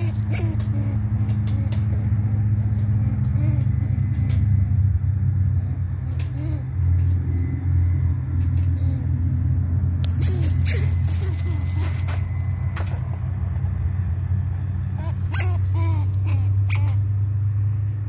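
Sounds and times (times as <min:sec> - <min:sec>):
loud low mechanical hum: 0:00.0 - 0:18.0.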